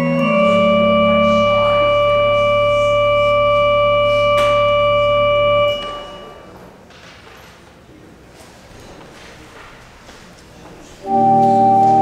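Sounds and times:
church organ sustained chord: 0:00.0 - 0:06.5, 0:11.0 - 0:12.0.

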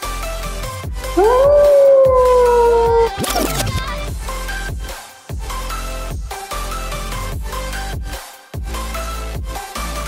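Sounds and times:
wolf howl: 0:01.1 - 0:03.3
electronic music: 0:01.2 - 0:03.9.

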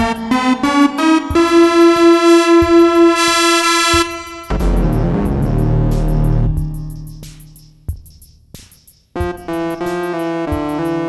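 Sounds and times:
buzzy pulsing synthesizer note: 0:00.0 - 0:07.9.

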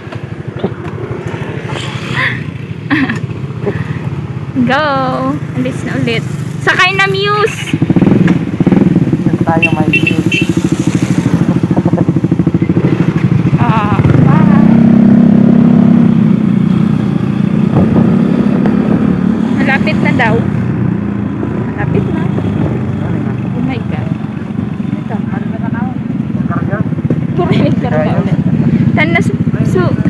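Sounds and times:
motorcycle engine: 0:00.0 - 0:30.0
voices: 0:01.6 - 0:07.8, 0:09.2 - 0:15.0, 0:19.4 - 0:20.6, 0:21.5 - 0:30.0
people laughing: 0:02.1 - 0:04.0.

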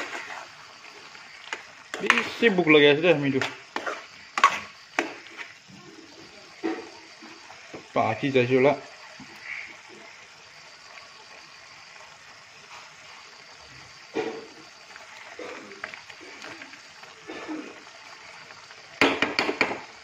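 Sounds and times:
metal spoon scraping pan: 0:03.3 - 0:05.5.

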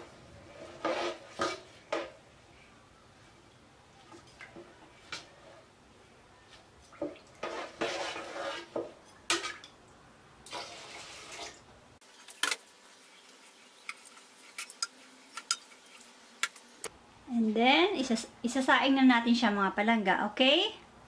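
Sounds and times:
spoon stirring liquid in a pot: 0:07.0 - 0:09.8.

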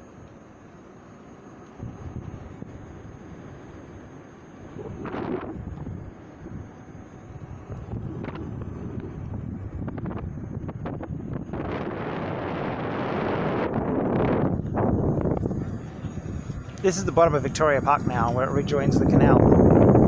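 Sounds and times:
wind buffeting microphone: 0:01.8 - 0:20.0.

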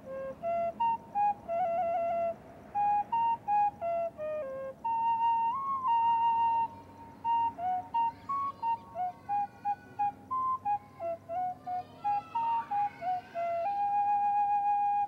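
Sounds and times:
flute playing slow melody: 0:00.0 - 0:15.0.

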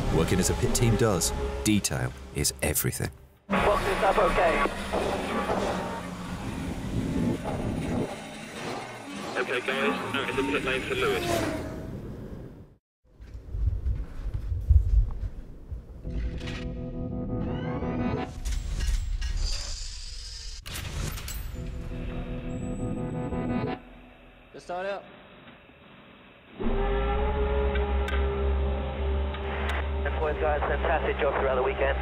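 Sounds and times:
music: 0:16.0 - 0:18.4, 0:21.6 - 0:24.3, 0:26.6 - 0:32.0
engine rising in pitch: 0:26.6 - 0:31.0.

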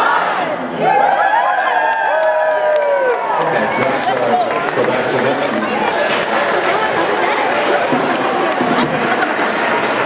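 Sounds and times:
crowd cheering and calling out: 0:00.0 - 0:10.0.

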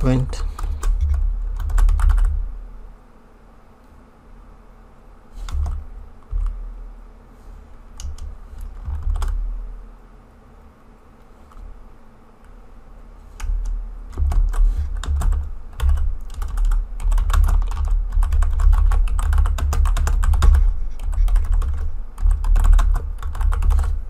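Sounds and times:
computer keyboard typing: 0:00.0 - 0:02.4, 0:05.4 - 0:06.6, 0:08.0 - 0:09.4, 0:13.4 - 0:24.0.

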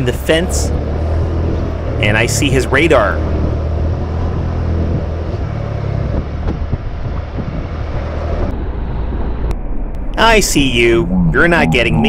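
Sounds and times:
wind and road noise: 0:00.0 - 0:12.0.

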